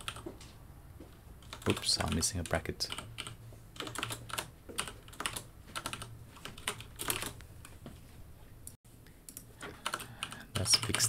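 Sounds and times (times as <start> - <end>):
keyboard typing: 0.0 - 0.2, 1.4 - 7.4, 9.2 - 11.0.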